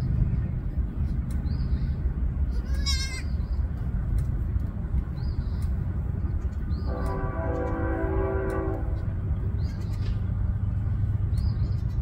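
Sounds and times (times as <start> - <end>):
steady low rumble: 0.0 - 12.0
goat bleating: 2.5 - 3.4.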